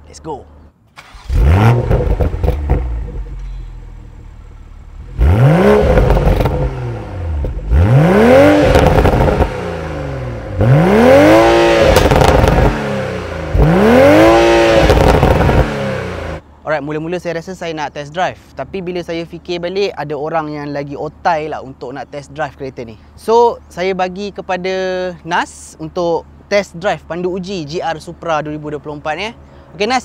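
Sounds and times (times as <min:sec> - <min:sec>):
car engine revving: 0:01.0 - 0:16.4.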